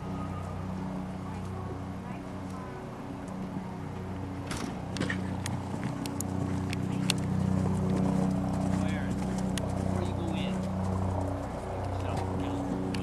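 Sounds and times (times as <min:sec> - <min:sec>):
faint distant voices: 0:00.0 - 0:13.0
steady low hum: 0:00.0 - 0:13.0
horse hoofbeats on sand: 0:05.0 - 0:12.9.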